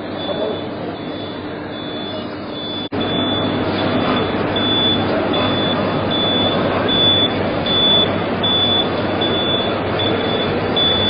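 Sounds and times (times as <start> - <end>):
noisy background hum: 0.0 - 11.0.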